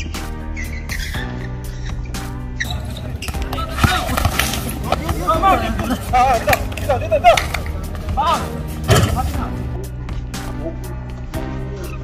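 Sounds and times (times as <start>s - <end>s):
background music: 0.0s - 12.0s
players calling out: 2.6s - 9.7s.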